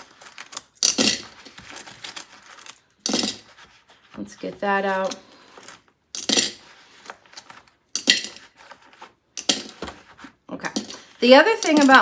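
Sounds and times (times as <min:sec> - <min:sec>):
coins jingling: 0:00.0 - 0:03.4, 0:11.5 - 0:12.0.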